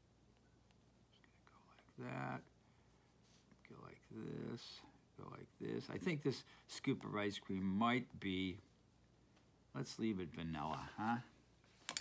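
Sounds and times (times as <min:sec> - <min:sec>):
faint whispered speech: 0:01.1 - 0:02.5.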